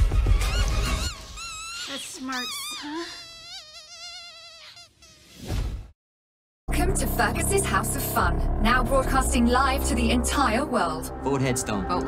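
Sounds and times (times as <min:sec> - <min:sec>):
rubber squeaky toy squealing: 0:00.0 - 0:05.4.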